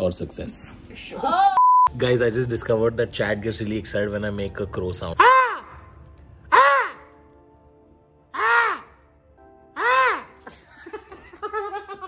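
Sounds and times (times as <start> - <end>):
faint background music: 0.0 - 12.0
man imitating crow caw: 5.2 - 5.8, 6.5 - 7.1, 8.4 - 9.0.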